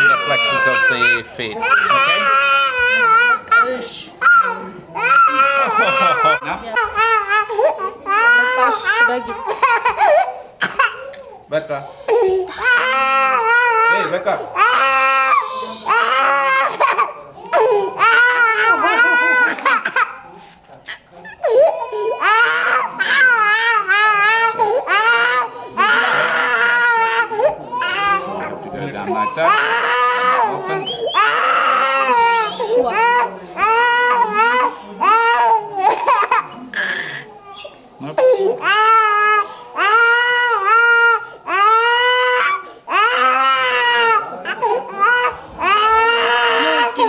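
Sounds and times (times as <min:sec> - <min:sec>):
toddler crying: 0:00.0 - 0:11.3, 0:12.1 - 0:20.2, 0:20.9 - 0:47.0.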